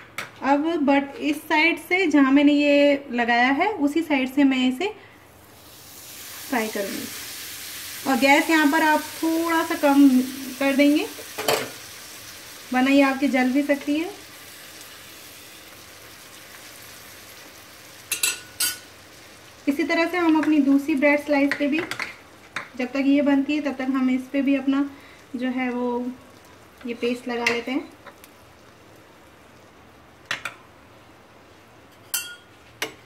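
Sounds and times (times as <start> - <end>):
bread sizzling in a pan: 5.3 - 32.2.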